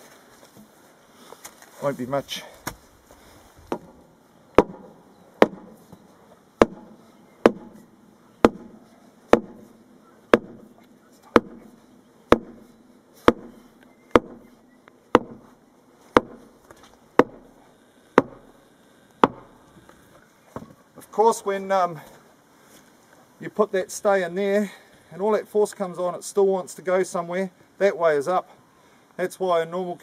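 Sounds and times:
steel bar thudding into ground: 3.7s - 5.9s, 6.6s - 14.6s, 15.2s - 15.5s, 16.1s - 16.5s, 17.2s - 17.5s, 18.2s - 18.5s.

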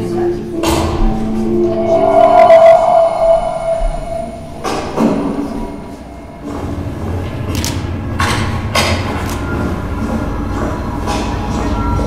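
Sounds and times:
held musical note: 0.3s - 7.5s.

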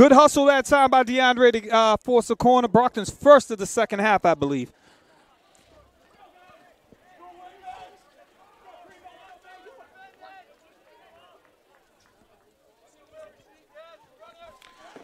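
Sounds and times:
distant voices shouting: 5.1s - 15.0s.

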